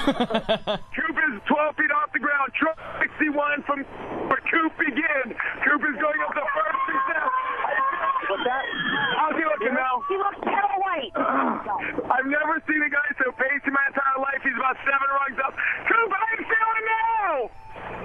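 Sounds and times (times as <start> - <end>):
men talking over radio: 0.9 - 17.6.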